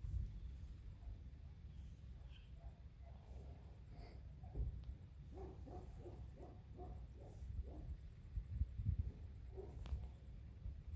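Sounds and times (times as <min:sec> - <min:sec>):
wind rumble on microphone: 0:00.0 - 0:01.2, 0:07.2 - 0:10.9
distant dog barking: 0:05.3 - 0:08.0, 0:09.1 - 0:10.1.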